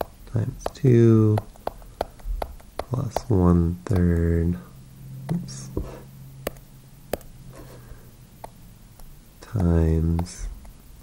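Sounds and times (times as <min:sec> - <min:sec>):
low electrical hum: 0:00.0 - 0:11.0
man breathing: 0:07.5 - 0:08.2.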